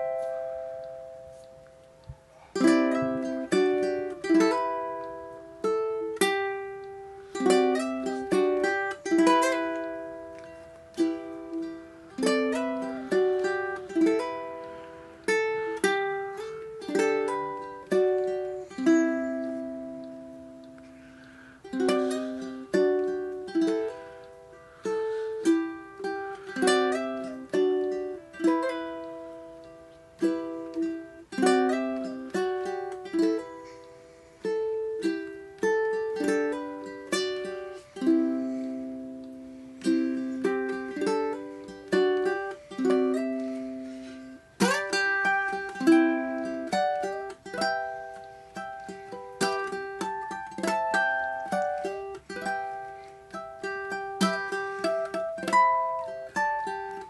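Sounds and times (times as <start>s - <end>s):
ukulele fingerstyle plucking: 0.0s - 57.0s.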